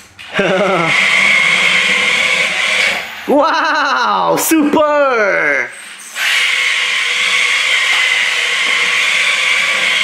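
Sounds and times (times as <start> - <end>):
toy car motor whirring: 0.6 - 3.1, 6.1 - 10.0.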